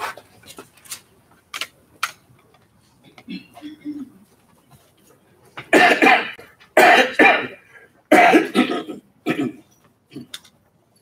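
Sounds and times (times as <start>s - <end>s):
man coughing: 5.7s - 9.6s.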